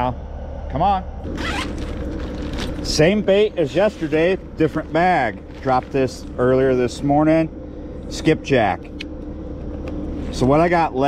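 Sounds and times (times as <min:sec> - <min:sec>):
steady low hum: 0:00.0 - 0:11.0
zipper being pulled open: 0:01.2 - 0:02.9.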